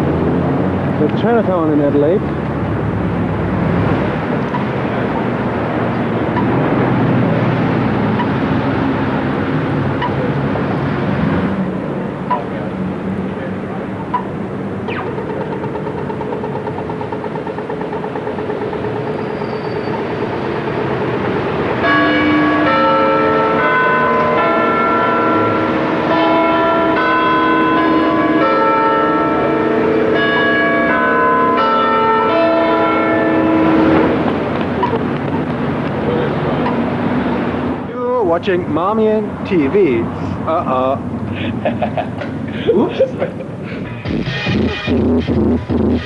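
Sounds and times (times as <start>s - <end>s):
city street traffic: 0.0s - 46.0s.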